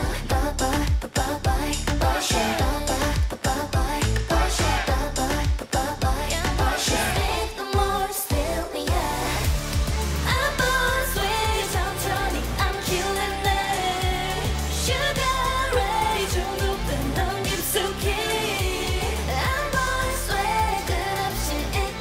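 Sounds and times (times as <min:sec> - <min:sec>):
dance-pop song with female vocals: 0:00.0 - 0:22.0.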